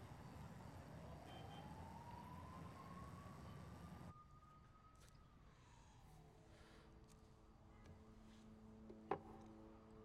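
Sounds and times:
faint distant siren wailing: 0.0s - 6.0s
low rumble of city ambience: 0.0s - 10.0s.

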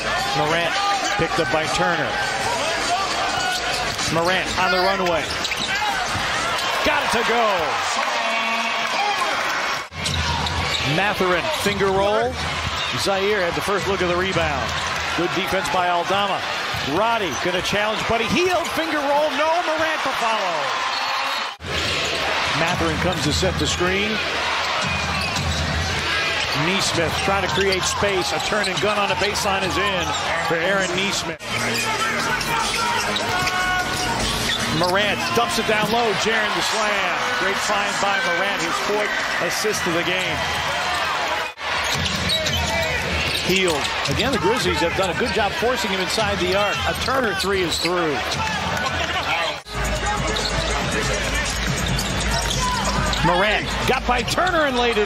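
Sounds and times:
arena crowd noise: 0.0s - 55.0s
basketball bouncing on court: 48.2s - 53.3s.

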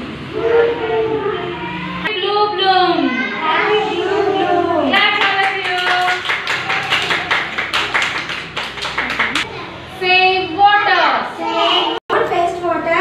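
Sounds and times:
voices: 0.0s - 13.0s
group clapping hands: 5.0s - 9.5s.

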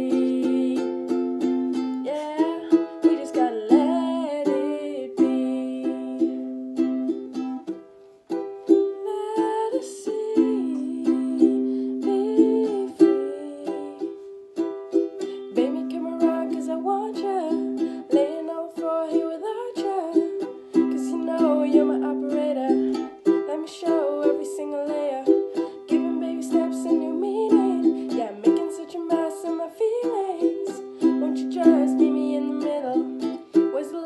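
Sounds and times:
woman singing: 0.0s - 6.9s, 8.8s - 14.3s, 15.2s - 34.0s
ukulele strumming: 0.0s - 34.0s.

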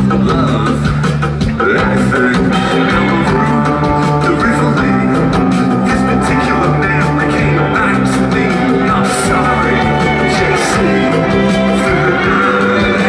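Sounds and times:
live rock band playing: 0.0s - 13.0s.

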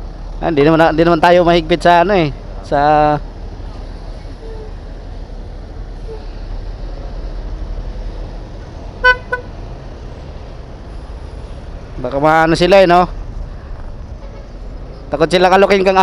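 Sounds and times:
vehicle horn toots: 9.0s - 9.6s, 14.2s - 14.6s.

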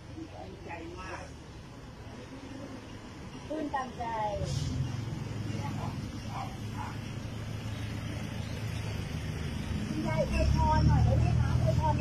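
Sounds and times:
faint street noise: 0.0s - 12.0s
vehicle engine running: 4.5s - 12.0s.

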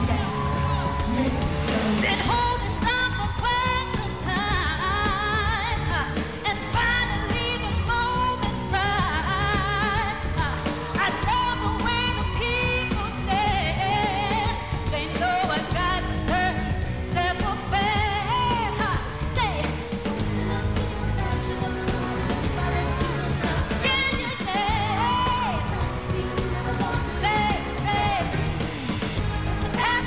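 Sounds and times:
backing track with heavy beat: 0.0s - 30.0s
woman singing dance-pop song: 0.0s - 30.0s.

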